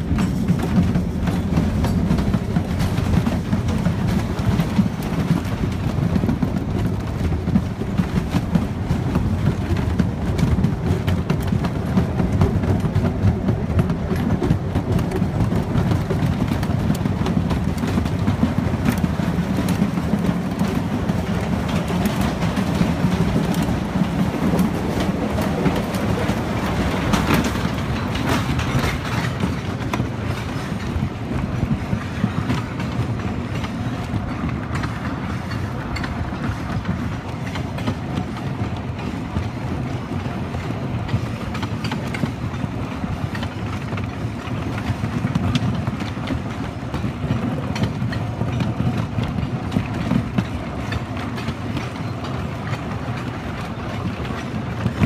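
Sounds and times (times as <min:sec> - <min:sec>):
roller coaster wheels rumbling: 0:00.0 - 0:55.0.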